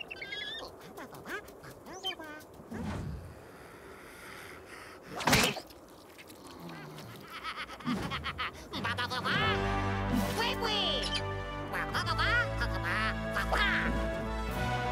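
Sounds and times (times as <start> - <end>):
cartoon creatures squawking gibberish: 0.0 - 2.6, 10.8 - 14.0.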